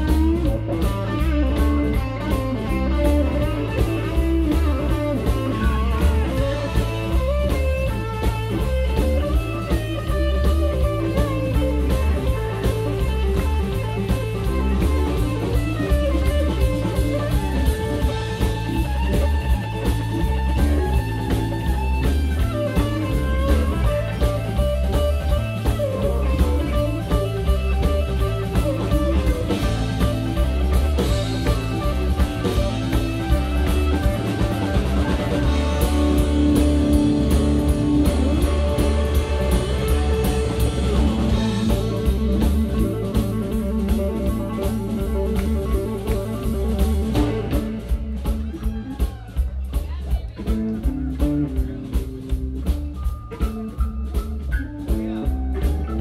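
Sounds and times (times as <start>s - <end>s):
blues rock band playing: 0.0s - 56.0s
electric guitar lead line: 0.0s - 56.0s.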